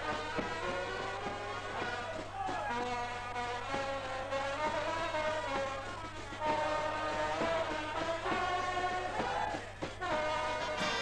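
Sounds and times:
brass band trumpets: 0:00.0 - 0:11.0.

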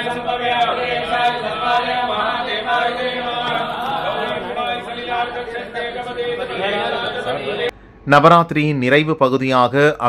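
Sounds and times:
voices chanting verses: 0:00.0 - 0:07.8.

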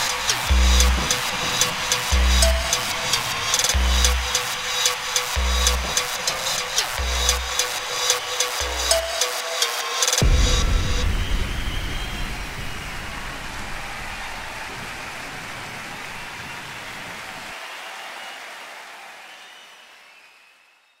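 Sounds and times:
deep bass rumble: 0:00.5 - 0:01.0, 0:02.2 - 0:02.6, 0:03.8 - 0:04.3.

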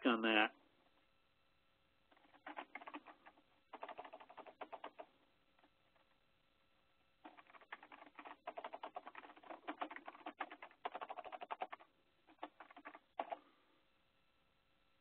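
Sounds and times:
computer keyboard typing: 0:02.1 - 0:06.2, 0:07.2 - 0:13.4.

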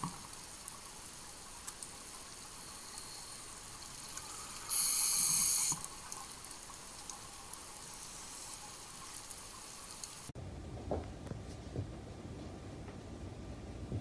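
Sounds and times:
faint underwater hiss: 0:00.0 - 0:10.3.

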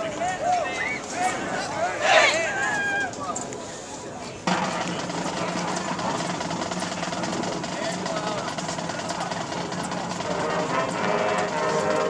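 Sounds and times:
murmur of spectators: 0:00.0 - 0:12.0
marching band brass chords: 0:10.0 - 0:12.0.

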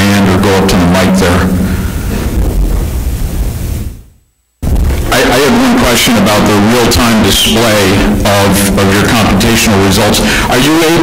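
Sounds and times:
microphone buffeting rush: 0:00.6 - 0:11.0.

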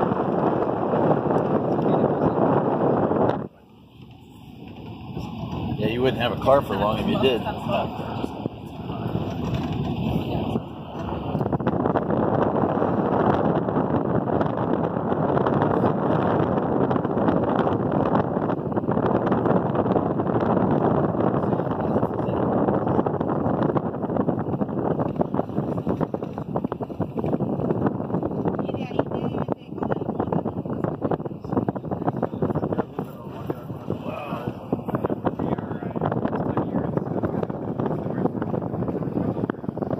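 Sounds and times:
car road noise: 0:00.0 - 0:39.9
wind buffeting microphone: 0:00.0 - 0:39.9.

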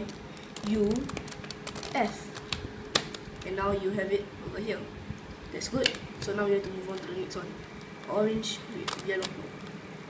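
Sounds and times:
plastic cube twisting clicks: 0:08.8 - 0:09.7.

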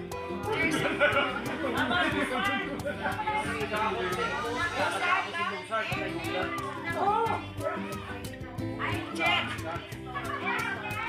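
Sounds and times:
background music: 0:00.0 - 0:11.0
people talking over one another: 0:00.0 - 0:11.0.

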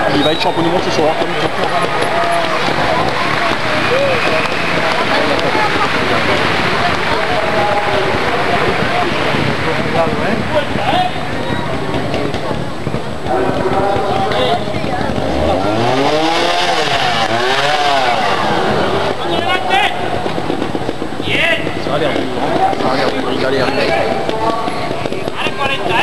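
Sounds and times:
crowd chatter: 0:00.0 - 0:26.0
motorcycle engine revving: 0:00.0 - 0:26.0.

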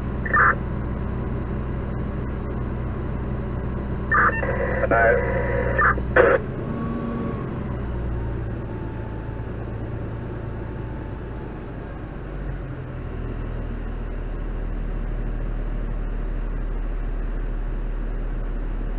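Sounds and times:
diesel engine rumbling: 0:00.0 - 0:18.9.

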